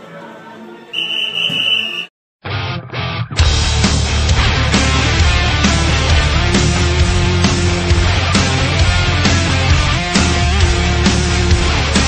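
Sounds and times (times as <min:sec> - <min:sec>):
sports whistle blast: 0:00.9 - 0:02.1.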